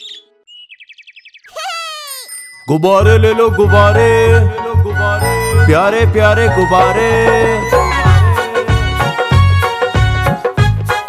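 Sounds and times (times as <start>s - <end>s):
cartoon bird chirp: 0.0s - 2.3s.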